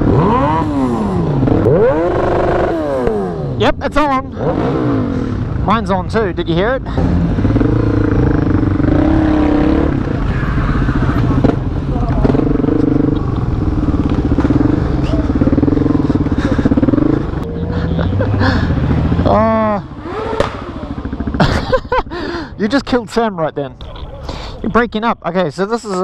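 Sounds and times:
motorcycle engine running: 0.0s - 23.0s
loud voice-like call: 10.1s - 12.2s.

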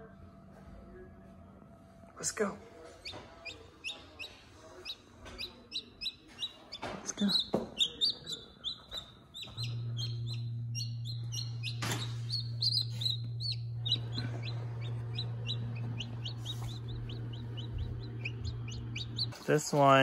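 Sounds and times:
steady low hum: 0.0s - 20.0s
chicks peeping: 3.0s - 20.0s.

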